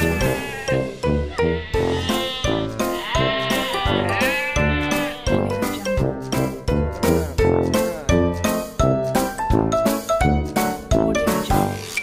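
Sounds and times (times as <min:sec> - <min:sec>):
goat bleating: 0:00.0 - 0:05.5
background music with steady beat: 0:00.0 - 0:11.8.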